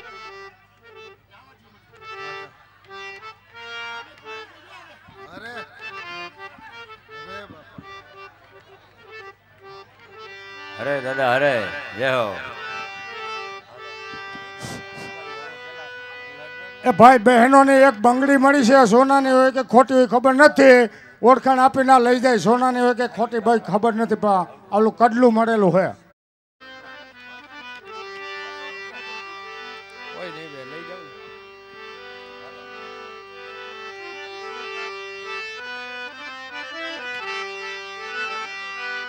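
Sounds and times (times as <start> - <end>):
harmonium reed notes: 0.0 - 25.4, 26.6 - 39.0
man singing: 10.8 - 13.0.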